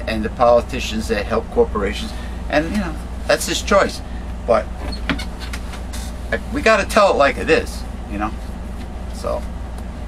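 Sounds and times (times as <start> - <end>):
man speaking: 0.0 - 4.8, 6.3 - 8.4
steady low hum: 0.0 - 10.0.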